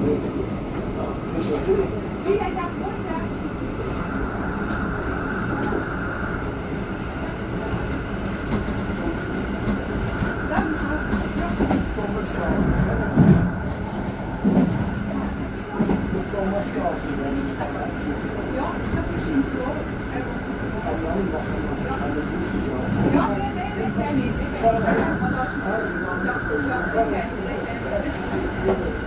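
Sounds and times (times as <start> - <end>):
constant whine: 0.0 - 29.0
train rolling on track: 0.0 - 29.0.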